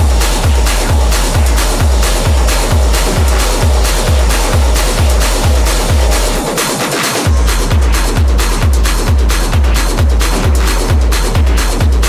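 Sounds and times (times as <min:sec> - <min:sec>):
deep kick drum: 0:00.0 - 0:12.0
hard techno music: 0:00.0 - 0:12.0.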